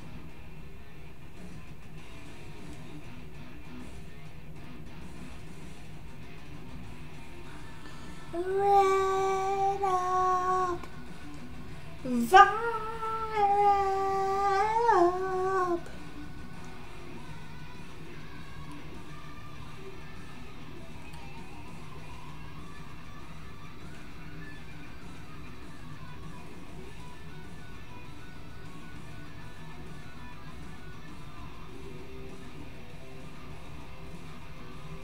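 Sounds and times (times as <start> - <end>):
hard rock guitar through speaker: 0.0 - 35.0.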